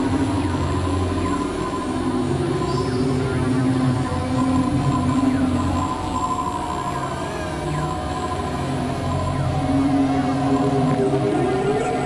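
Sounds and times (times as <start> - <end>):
experimental electronic drones: 0.0 - 12.0.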